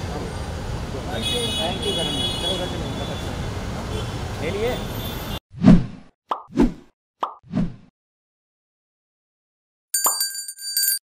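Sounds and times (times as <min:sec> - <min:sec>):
bright ringing chime: 0:10.0 - 0:11.0.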